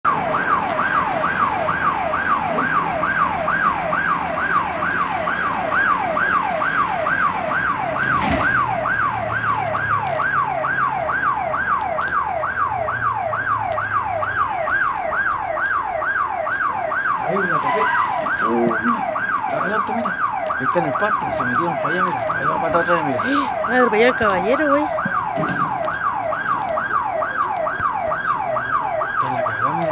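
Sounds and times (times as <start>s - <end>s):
electronic siren wailing: 0.0s - 29.9s.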